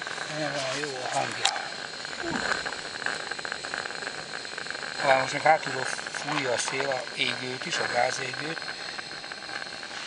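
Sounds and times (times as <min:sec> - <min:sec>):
steam hissing: 0:00.0 - 0:10.0.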